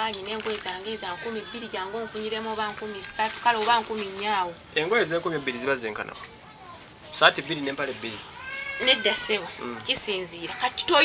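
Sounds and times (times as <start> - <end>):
woman speaking: 0.0 - 4.6, 8.8 - 11.0.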